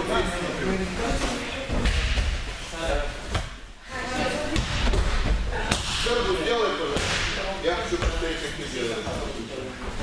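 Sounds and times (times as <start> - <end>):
voices in a hall: 0.0 - 10.0.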